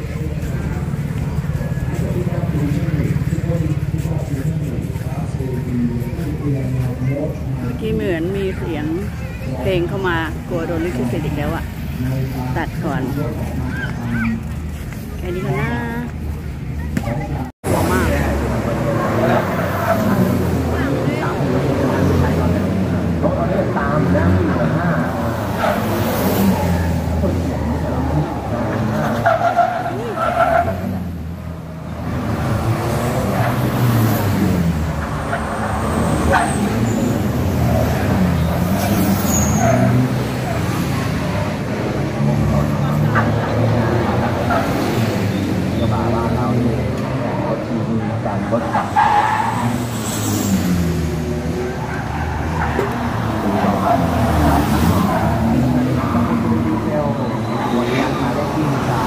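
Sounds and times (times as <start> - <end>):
race cars passing: 0.0 - 59.0.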